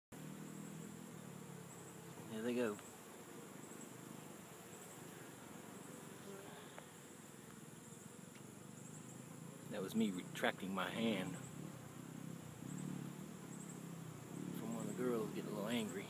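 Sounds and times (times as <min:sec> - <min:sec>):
bee swarm buzzing: 0:00.2 - 0:16.0.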